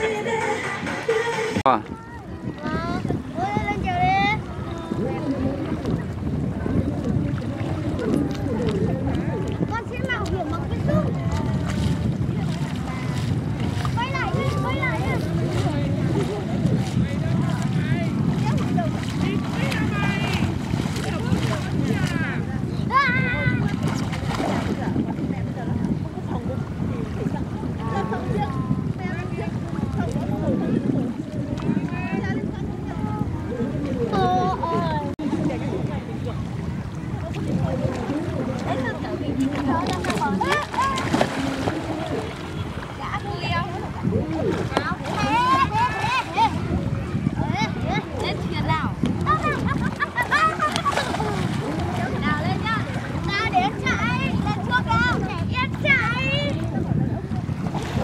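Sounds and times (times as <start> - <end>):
sea water splashing: 0.0 - 58.0
wind rumbling on microphone: 0.0 - 58.0.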